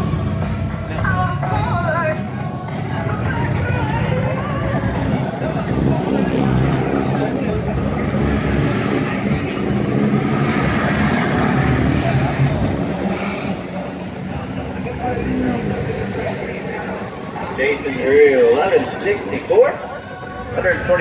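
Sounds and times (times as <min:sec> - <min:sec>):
drag car engine running hard: 0:00.0 - 0:18.0
voices: 0:00.0 - 0:21.0.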